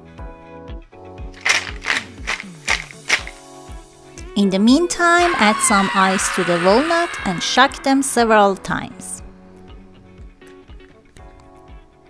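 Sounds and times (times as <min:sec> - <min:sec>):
background music: 0:00.0 - 0:12.0
ice cubes cracking in tray: 0:01.4 - 0:03.4.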